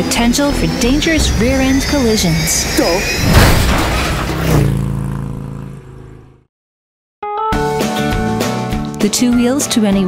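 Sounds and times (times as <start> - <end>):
low humming tone: 0.0 - 6.1.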